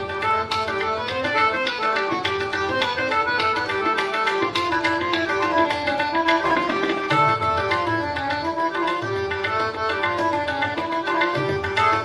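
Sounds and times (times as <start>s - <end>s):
harmonium melody: 0.0s - 12.0s
tabla strokes: 0.0s - 12.0s.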